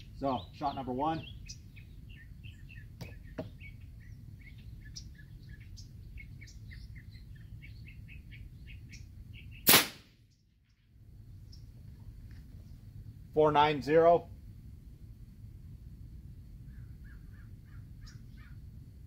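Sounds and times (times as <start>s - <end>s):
small birds chirping: 0.0s - 13.0s, 16.6s - 18.9s
loud air rifle shot: 9.6s - 10.2s.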